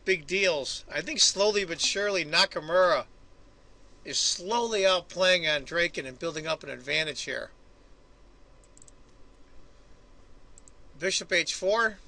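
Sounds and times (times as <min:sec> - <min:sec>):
low room hiss: 0:00.0 - 0:12.0
computer mouse clicks: 0:08.6 - 0:09.2, 0:10.5 - 0:10.8.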